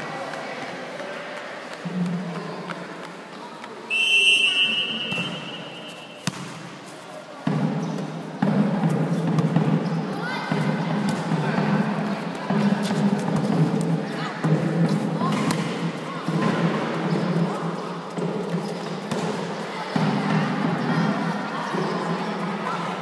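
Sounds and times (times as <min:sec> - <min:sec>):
referee's whistle: 0:03.9 - 0:06.2
volleyball hit: 0:05.0 - 0:06.8.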